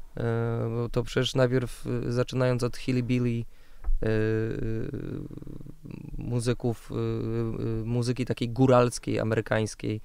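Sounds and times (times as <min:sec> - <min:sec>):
man's drawn-out hesitation sound: 0:00.2 - 0:09.4.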